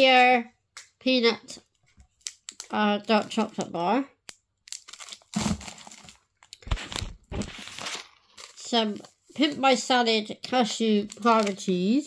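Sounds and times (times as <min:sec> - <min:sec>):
plastic packets crinkling: 0:01.7 - 0:10.0, 0:10.6 - 0:12.0.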